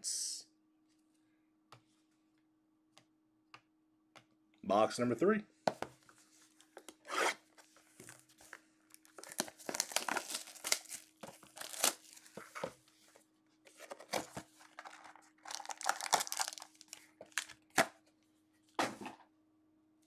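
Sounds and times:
plastic wrap tearing and crumpling: 0:09.0 - 0:12.4, 0:14.7 - 0:17.7.

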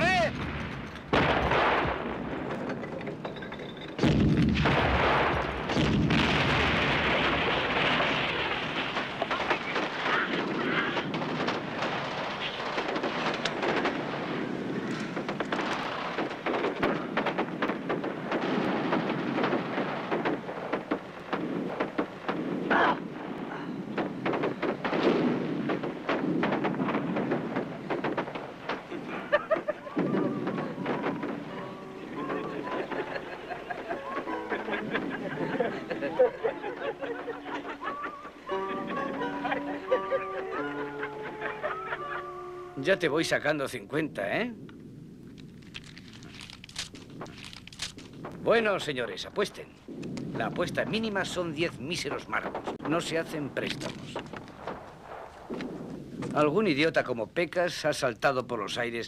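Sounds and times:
gunfire: 0:00.0 - 0:02.7, 0:04.0 - 0:34.4, 0:52.1 - 0:56.0
loud cracks: 0:00.0 - 0:03.2, 0:04.0 - 0:34.4, 0:44.6 - 0:48.6, 0:52.0 - 0:56.4
heavy boom: 0:04.0 - 0:22.7.

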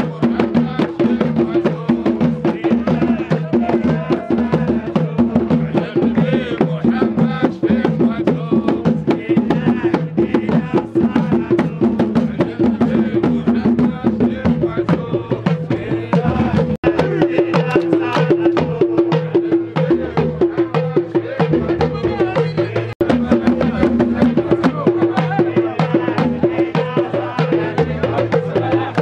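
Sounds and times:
hand drums beating fast rhythm: 0:00.0 - 0:29.0
voices chanting: 0:00.0 - 0:29.0.

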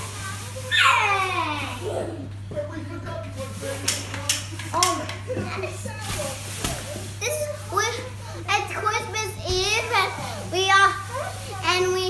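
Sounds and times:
boy calling out: 0:00.7 - 0:02.2.

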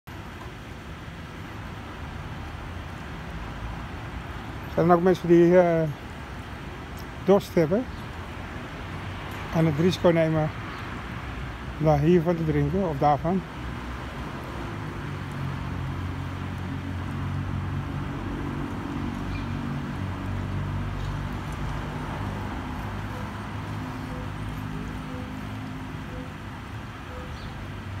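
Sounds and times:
street traffic rumble: 0:00.0 - 0:28.0.

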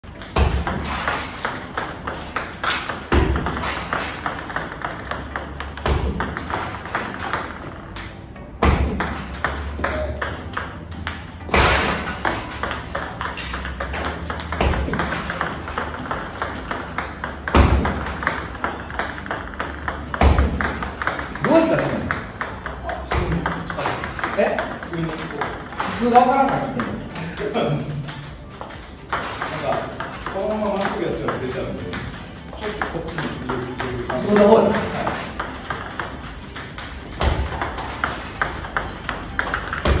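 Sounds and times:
table tennis ball clicks: 0:00.1 - 0:08.2, 0:09.0 - 0:40.0.

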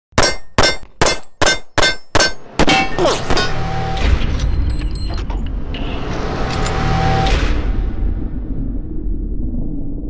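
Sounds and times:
bullets clanging on steel targets: 0:00.2 - 0:03.8.

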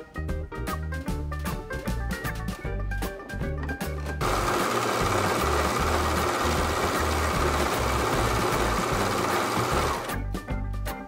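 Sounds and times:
overlocker stitching fabric: 0:04.2 - 0:10.1.

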